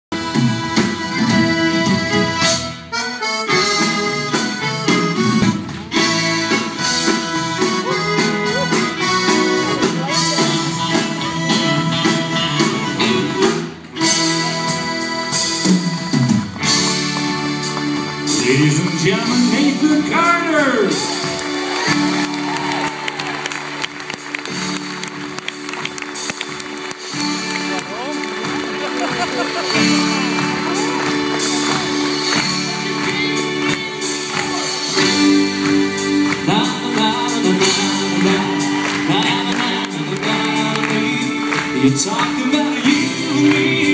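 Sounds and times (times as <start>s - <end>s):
country band playing: 0.1s - 43.9s
steady drum beat: 0.2s - 43.9s
audience cheering and whistling: 20.9s - 24.8s, 37.9s - 40.0s.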